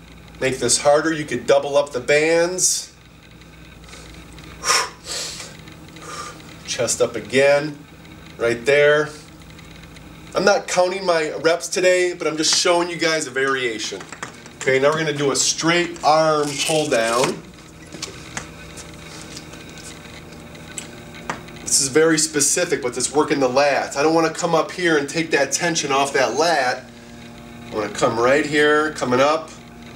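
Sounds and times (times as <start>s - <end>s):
low room hum: 0.0s - 29.9s
man's sharp breath out: 4.6s - 6.4s.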